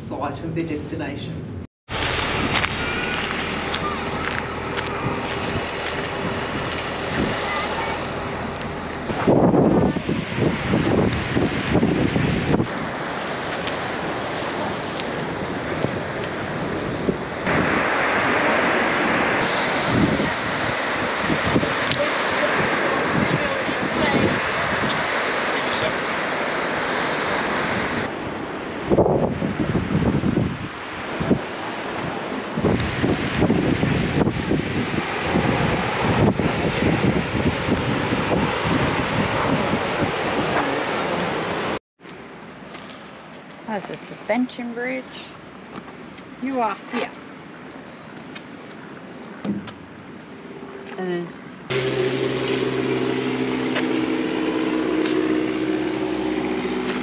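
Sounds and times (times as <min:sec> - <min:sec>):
wind buffeting microphone: 0:00.2 - 0:57.0
surf breaking on rocks: 0:01.9 - 0:41.8
indistinct voices: 0:02.0 - 0:09.3.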